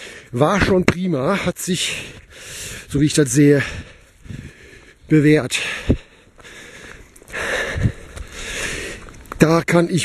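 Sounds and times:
person breathing hard: 0:00.0 - 0:00.4, 0:01.8 - 0:02.9, 0:03.5 - 0:09.2.

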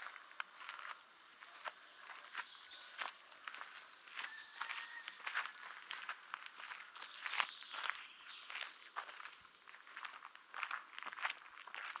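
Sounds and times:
footsteps on dirt track: 0:00.0 - 0:12.0.

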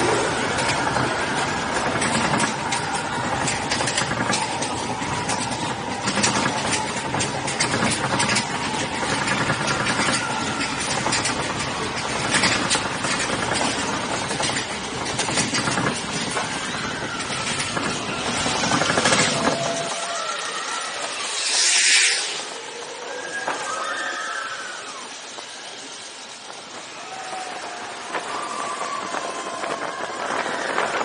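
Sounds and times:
roller coaster rumbling on track: 0:00.0 - 0:31.0.

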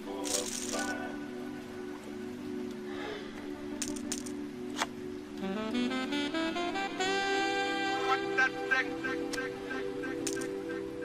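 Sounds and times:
background music: 0:00.0 - 0:11.0
poker chips clattering: 0:00.2 - 0:01.0, 0:03.8 - 0:04.4, 0:10.2 - 0:10.6.

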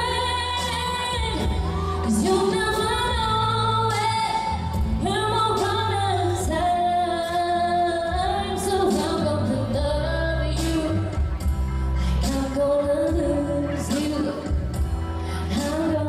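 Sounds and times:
pop backing track: 0:00.0 - 0:16.0
woman singing into microphone: 0:00.0 - 0:16.0.

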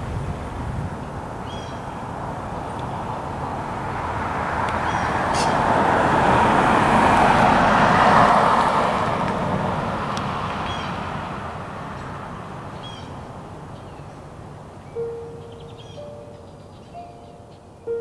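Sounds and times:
road vehicle passing by: 0:00.0 - 0:18.0.

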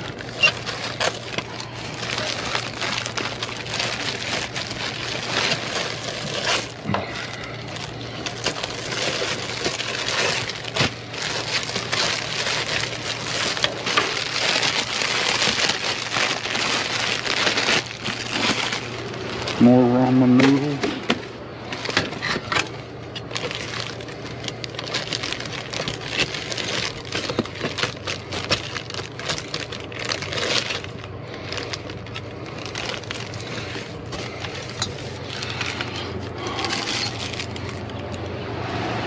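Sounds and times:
plastic bags crinkling: 0:00.0 - 0:38.4
steady low hum: 0:00.0 - 0:39.0.

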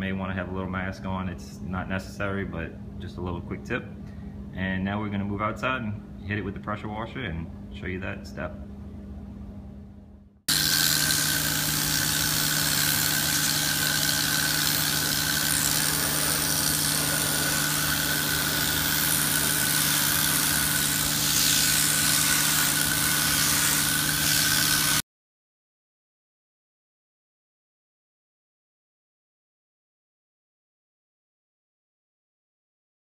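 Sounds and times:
pressure washer running: 0:10.5 - 0:25.0.

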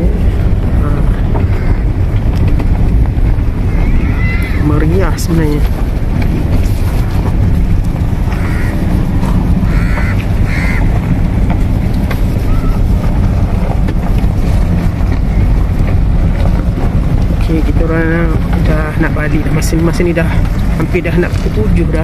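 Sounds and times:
car interior rumble: 0:00.0 - 0:22.0
wind buffeting microphone: 0:00.0 - 0:22.0.

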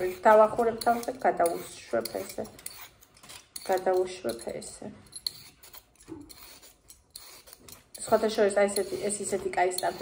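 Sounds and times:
peeler scraping a carrot: 0:00.0 - 0:10.0.

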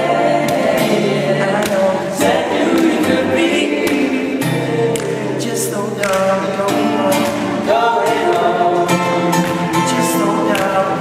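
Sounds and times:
acoustic guitar: 0:00.0 - 0:11.0
male vocal group singing: 0:00.0 - 0:11.0.

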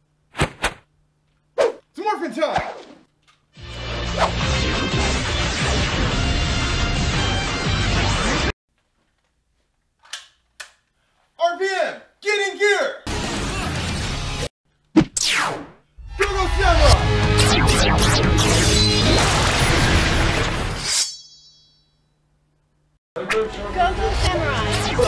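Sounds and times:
high metallic ding: 0:20.9 - 0:22.2.

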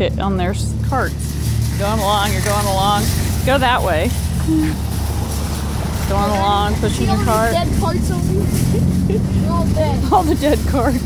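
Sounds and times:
cart wheels rolling on asphalt: 0:00.0 - 0:11.0.

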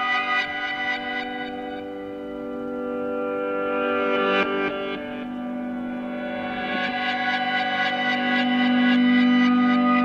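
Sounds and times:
electric guitar drone with echo: 0:00.0 - 0:10.0.

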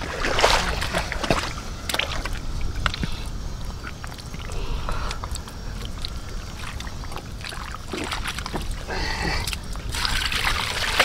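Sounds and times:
hands squelching in wet mud: 0:00.0 - 0:11.0
steady low rumble: 0:00.0 - 0:11.0.

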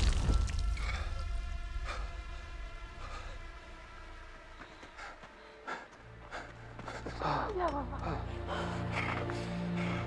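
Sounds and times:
low film score drone: 0:00.0 - 0:10.0.

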